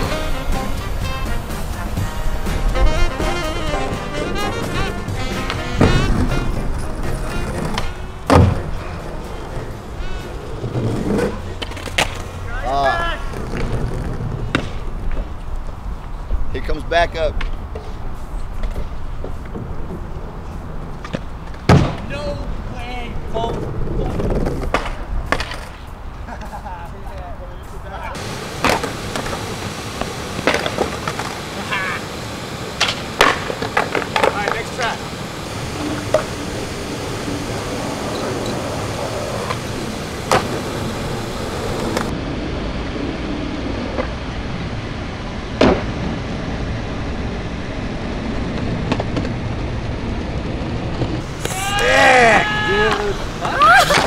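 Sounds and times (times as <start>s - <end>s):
skateboard wheels rolling: 0.0s - 54.0s
skateboard clacks: 2.8s - 15.5s, 24.0s - 25.8s, 28.2s - 35.1s, 37.6s - 42.1s, 48.5s - 54.0s.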